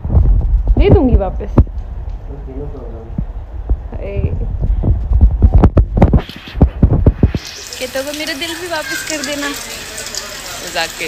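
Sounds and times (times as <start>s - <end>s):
steady low rumble: 0.0s - 7.5s
faint voices: 7.6s - 11.0s.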